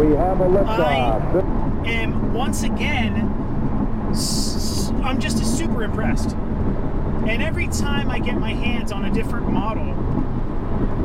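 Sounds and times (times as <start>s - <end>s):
car engine and tyres drone: 0.0s - 11.0s.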